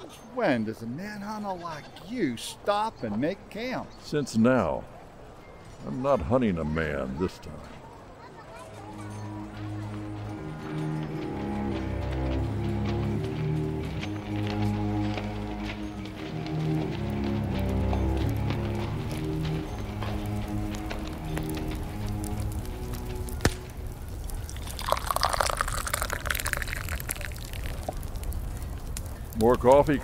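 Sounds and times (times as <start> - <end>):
low instrumental music: 8.7 - 29.9
coffee poured into a cup: 24.5 - 28.0.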